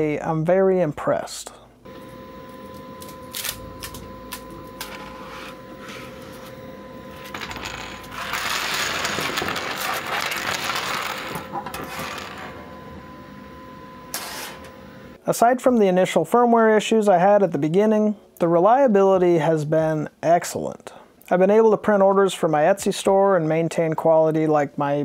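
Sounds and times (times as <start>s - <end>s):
faint steady whine: 1.5s - 16.0s.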